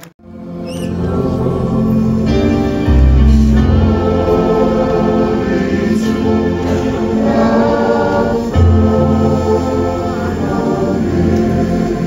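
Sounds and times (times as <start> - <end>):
organ-like keyboard chords: 0.0 - 12.0
choir singing a hymn: 0.2 - 12.0.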